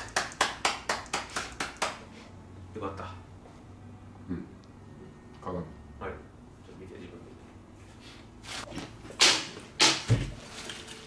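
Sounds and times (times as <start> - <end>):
hands clapping: 0.0 - 2.0.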